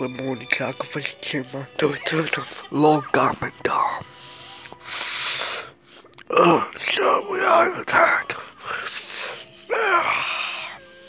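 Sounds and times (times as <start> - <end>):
breathy hiss from mouth: 4.1 - 6.3.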